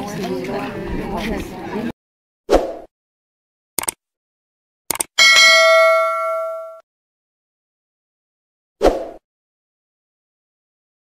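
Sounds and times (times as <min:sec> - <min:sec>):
mouse double click: 0:04.9 - 0:05.1
bell ding: 0:05.2 - 0:06.8.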